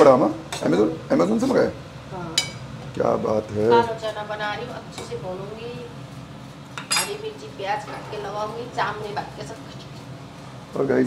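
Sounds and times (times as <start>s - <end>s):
steel utensil clinking on cookware: 6.8s - 7.2s.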